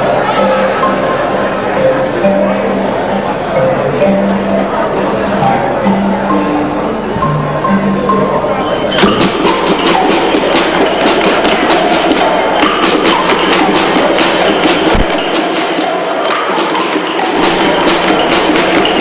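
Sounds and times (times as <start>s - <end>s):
crowd chatter: 0.0s - 19.0s
wooden percussion ensemble: 0.0s - 19.0s.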